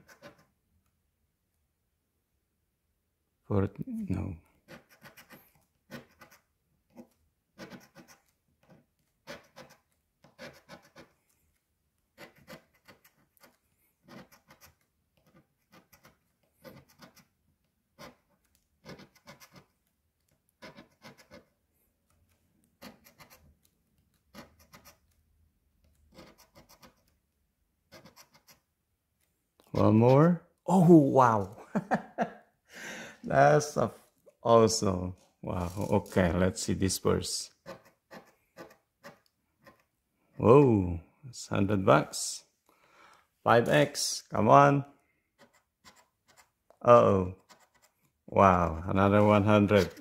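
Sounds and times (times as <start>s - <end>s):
coin scratching lottery ticket: 0.0s - 0.5s, 4.6s - 11.2s, 12.1s - 17.3s, 17.9s - 19.8s, 20.5s - 21.5s, 22.7s - 23.5s, 24.1s - 25.2s, 26.0s - 27.1s, 27.9s - 28.7s, 37.6s - 39.8s, 47.4s - 48.0s.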